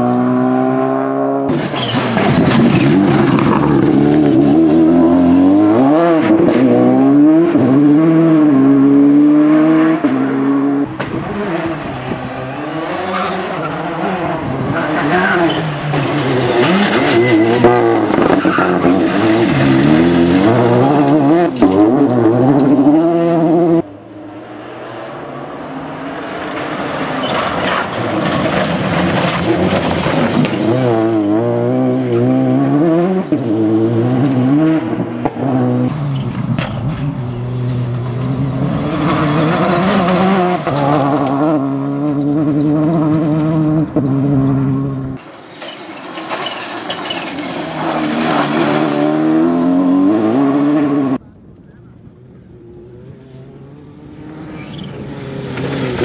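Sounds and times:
rally car engine revving: 0.0s - 51.2s, 52.4s - 56.0s.

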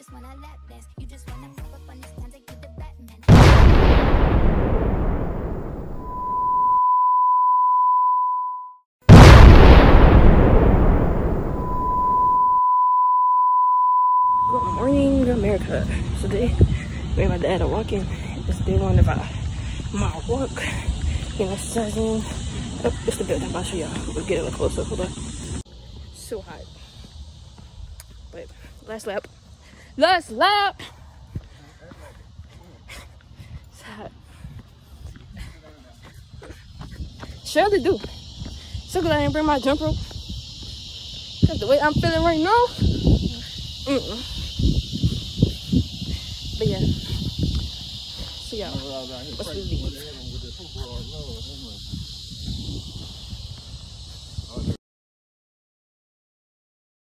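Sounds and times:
loud boom blast: 3.3s - 6.8s, 9.1s - 12.6s
steady single-pitch beep: 5.8s - 8.8s, 11.4s - 15.2s
wind rumble on microphone: 14.5s - 25.6s, 33.2s - 54.8s.

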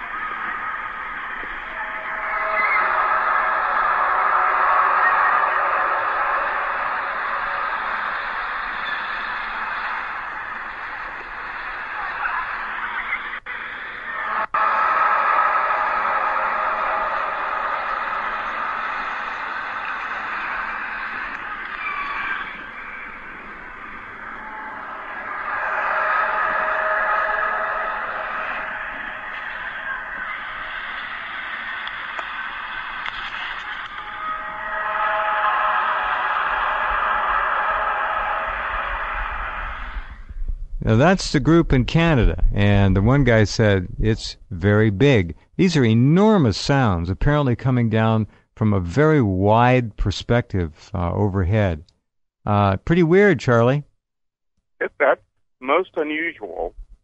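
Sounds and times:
droning tones from overhead: 0.0s - 42.3s.

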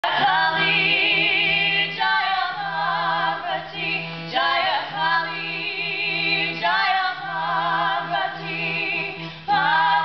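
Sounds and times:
women singing together: 0.0s - 10.0s
harmonium drone: 0.1s - 10.0s.

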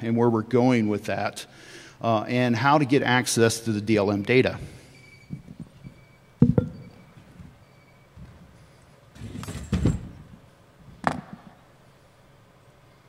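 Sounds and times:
scraping rumbling handling noise: 4.5s - 11.5s
microphone handling knocks: 6.4s - 7.5s.

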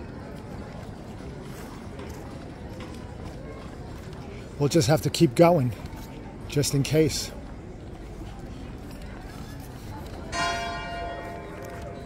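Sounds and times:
murmur of voices: 0.0s - 12.0s
church bell ringing: 10.3s - 12.0s.

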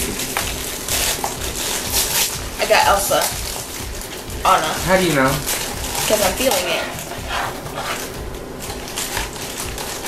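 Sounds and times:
foil bags crinkling: 0.0s - 10.0s.

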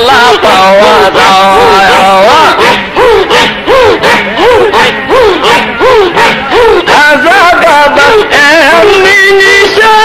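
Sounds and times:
men chanting rhythmically: 0.0s - 10.0s.

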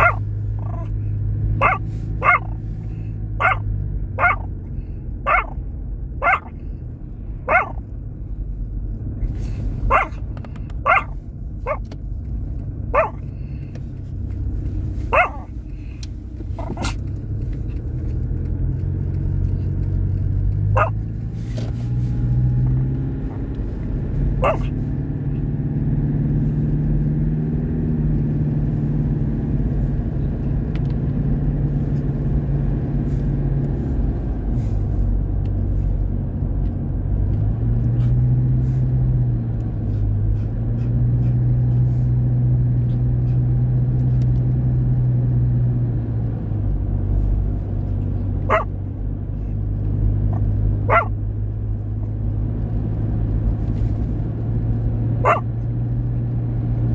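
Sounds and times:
car engine hum: 0.0s - 56.9s
road rumble: 0.0s - 56.9s.

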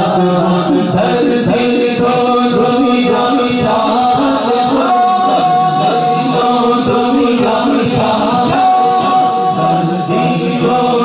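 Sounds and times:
men chanting in unison: 0.0s - 11.0s
steady held vocal drone: 0.0s - 11.0s.

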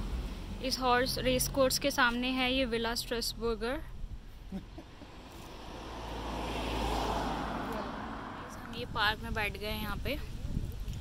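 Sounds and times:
car passing by: 5.1s - 9.1s.

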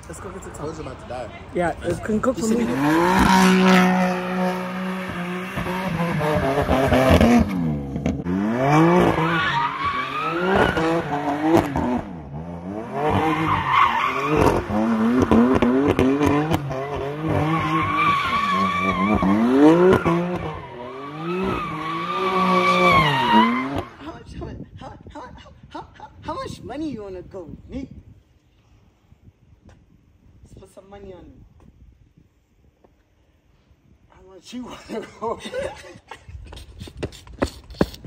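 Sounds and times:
car engine revving: 2.2s - 24.0s.

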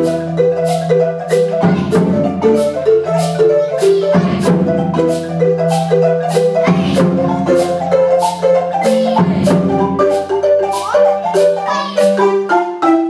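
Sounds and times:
marimbas playing fast pattern: 0.0s - 13.0s.

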